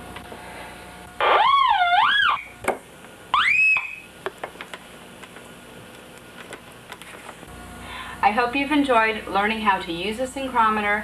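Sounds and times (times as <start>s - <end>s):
warbling electronic tone: 1.2s - 2.5s.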